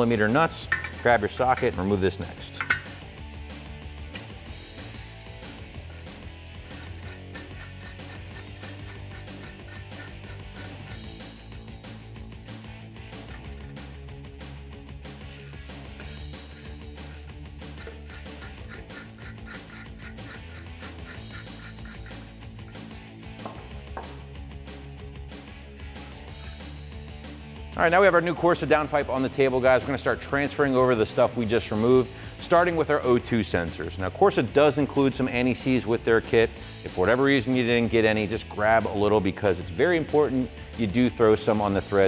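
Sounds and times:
background music: 0.0 - 42.0
socket ratchet clicking: 4.8 - 11.1, 13.3 - 14.1, 15.3 - 22.8.

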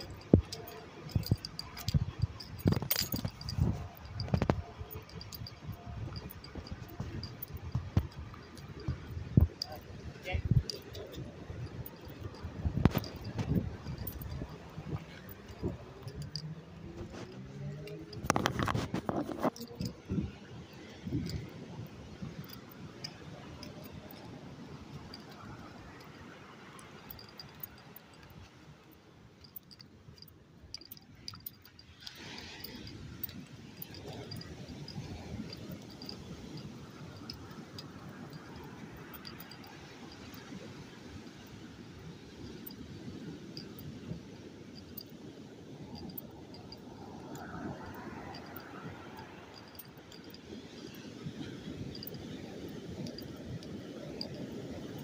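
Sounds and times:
phone handling and footsteps: 0.0 - 28.6.

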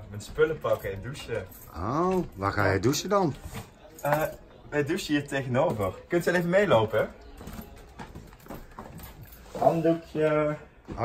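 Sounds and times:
soft handling noise: 0.0 - 11.0
footsteps on floor: 7.3 - 11.0.

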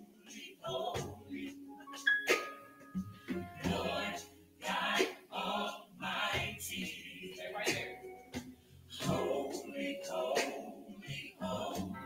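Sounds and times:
congregation reciting in unison: 0.0 - 2.5, 3.6 - 8.0, 8.9 - 12.0.

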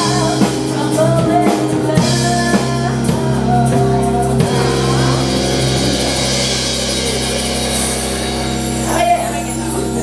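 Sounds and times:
cymbals washing: 0.0 - 10.0
rock band playing: 0.0 - 10.0.

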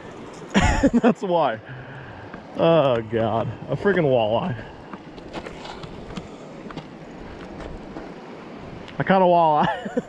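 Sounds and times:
fast river rushing: 0.0 - 10.0.

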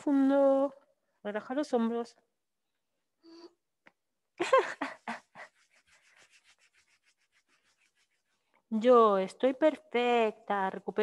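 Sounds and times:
hands rubbing fabric: 4.8 - 8.6.

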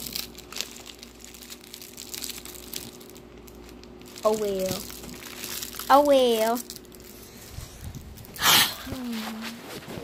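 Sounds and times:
gum wrapper crinkling: 0.0 - 9.2
faint steady hum: 0.0 - 10.0.

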